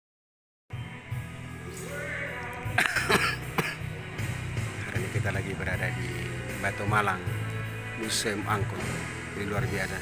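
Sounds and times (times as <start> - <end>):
background music: 0.7 - 10.0
person clearing throat: 2.7 - 4.0.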